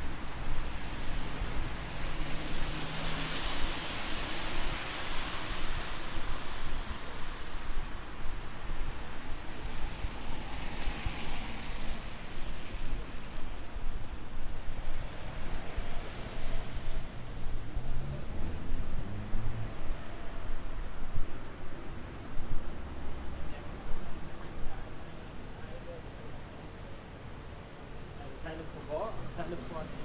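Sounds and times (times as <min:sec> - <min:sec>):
car tyres hissing on wet road: 0:00.0 - 0:20.5
low traffic rumble: 0:00.0 - 0:30.0.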